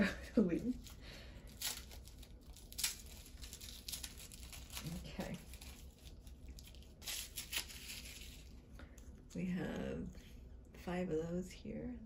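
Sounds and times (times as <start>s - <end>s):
wrapping crinkling and tearing: 0.0s - 9.2s.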